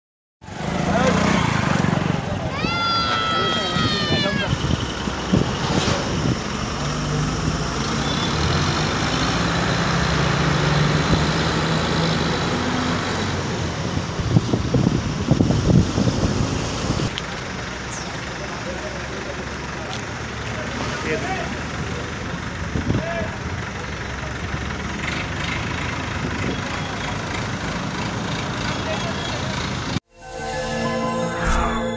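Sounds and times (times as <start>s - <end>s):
people's voices: 0.8s - 5.3s.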